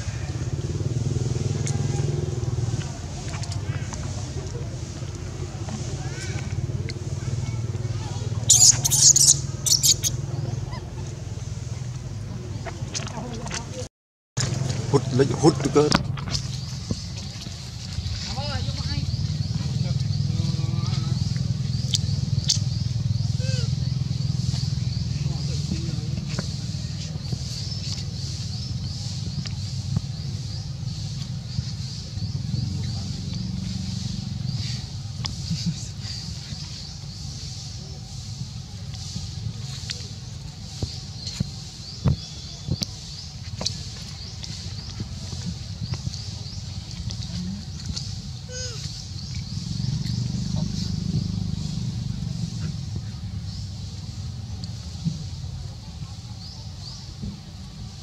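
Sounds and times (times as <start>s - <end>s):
steady low murmur: 0.0s - 58.0s.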